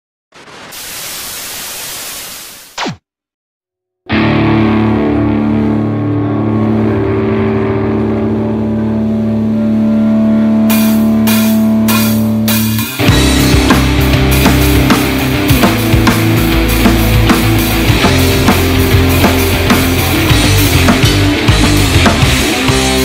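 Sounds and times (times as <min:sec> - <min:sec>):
hiss with falling sweep: 0:00.4 - 0:03.0
electric guitar and bass chord: 0:04.1 - 0:23.0.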